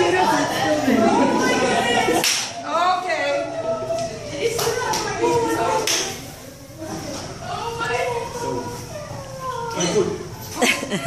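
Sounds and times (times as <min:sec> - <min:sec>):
murmur of people: 0:00.0 - 0:11.0
sharp smack-like snap: 0:02.2 - 0:02.5.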